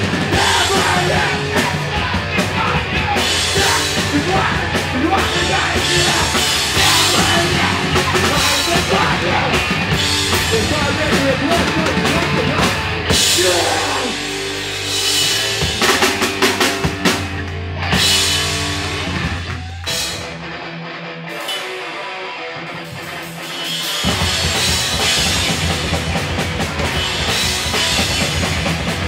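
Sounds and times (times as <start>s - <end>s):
drum kit: 0.0s - 20.6s, 21.3s - 29.0s
electric guitars: 0.0s - 29.0s.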